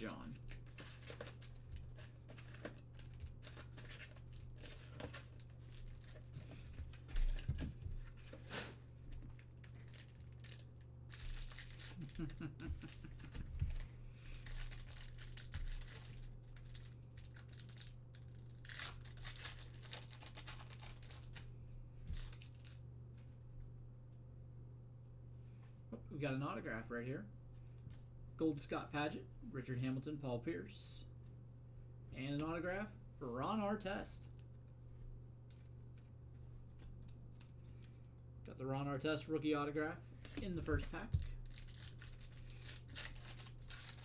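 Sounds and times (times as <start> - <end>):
foil wrappers crinkling and tearing: 0.0 - 21.5, 22.1 - 22.8, 40.2 - 44.0
steady low hum: 0.0 - 44.0.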